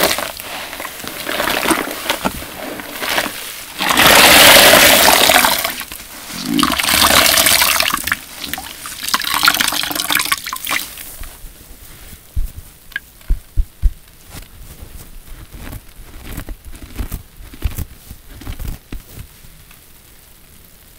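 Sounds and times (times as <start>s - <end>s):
sponge squelching: 0.0s - 9.8s
water gushing out: 0.0s - 10.8s.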